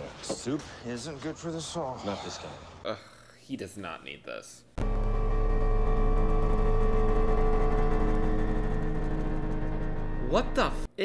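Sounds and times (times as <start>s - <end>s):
deep droning hum: 4.8s - 10.9s.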